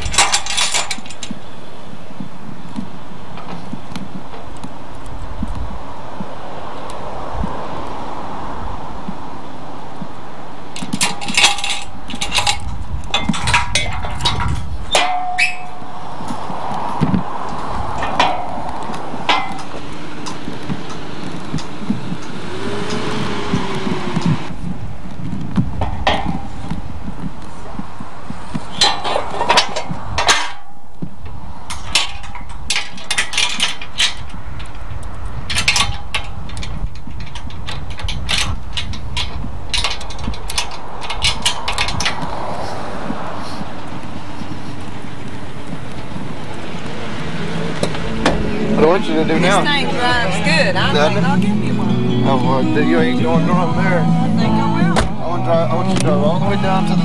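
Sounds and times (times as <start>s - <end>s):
steady low rumble: 0.0s - 57.0s.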